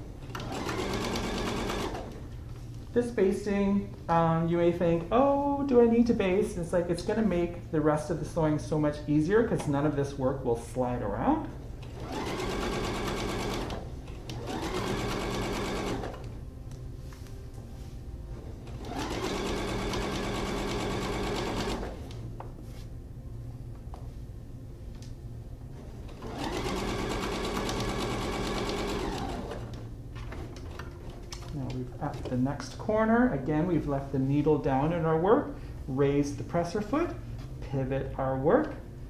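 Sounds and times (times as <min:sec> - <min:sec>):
sewing machine sewing: 0:00.2 - 0:02.2, 0:11.8 - 0:16.3, 0:18.6 - 0:22.1, 0:26.1 - 0:30.8.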